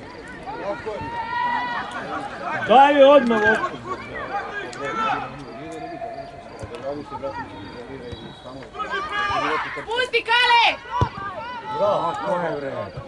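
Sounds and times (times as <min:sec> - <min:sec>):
voices shouting: 0:00.0 - 0:13.0.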